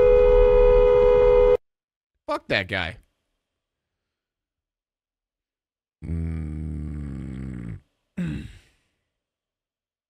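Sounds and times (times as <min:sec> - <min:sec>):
vocal grunt: 0:06.0 - 0:08.7
man humming mm: 0:06.0 - 0:08.8.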